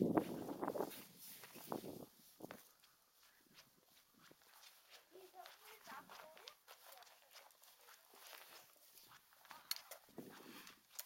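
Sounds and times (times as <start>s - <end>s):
faint footsteps on stone paving: 0.0s - 11.0s.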